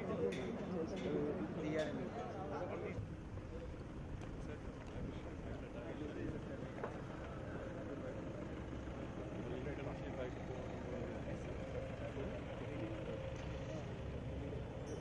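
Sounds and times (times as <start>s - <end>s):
low outdoor rumble: 0.0s - 15.0s.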